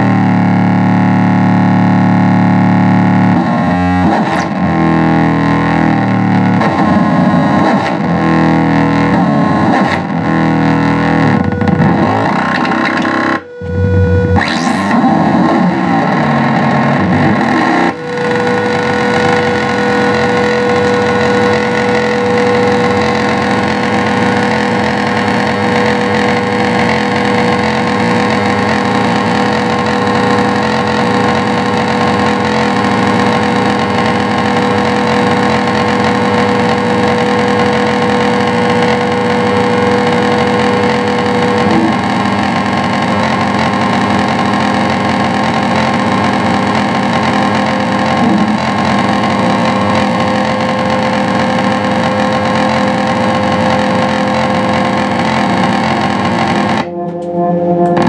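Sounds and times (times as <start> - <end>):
distorted electric guitar noise: 0.0 - 58.0
held drone tone: 0.0 - 58.0.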